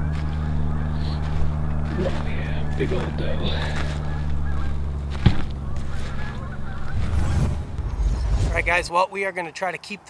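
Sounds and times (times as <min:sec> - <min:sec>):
distant geese honking: 0:00.0 - 0:08.8
steady low rumble: 0:00.0 - 0:08.9.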